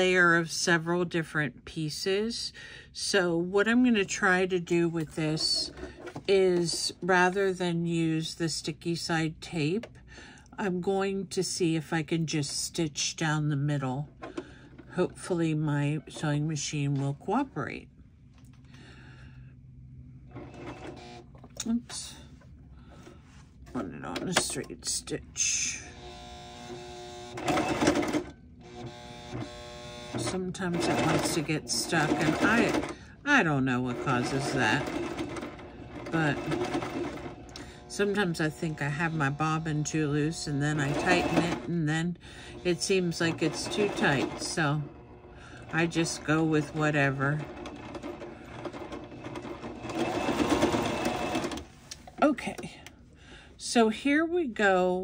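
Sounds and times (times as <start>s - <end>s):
sewing machine stitching: 5.0s - 7.0s, 20.3s - 21.2s, 26.0s - 51.7s.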